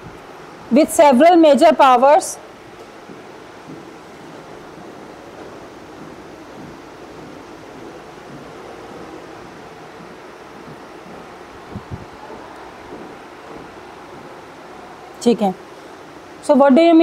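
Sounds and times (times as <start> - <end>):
room noise hiss: 0.0 - 17.0.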